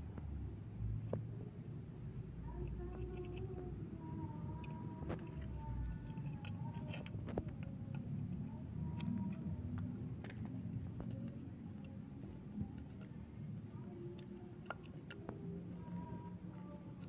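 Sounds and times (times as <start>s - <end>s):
faint steady tones: 0.0s - 17.0s
low background rumble: 0.0s - 17.0s.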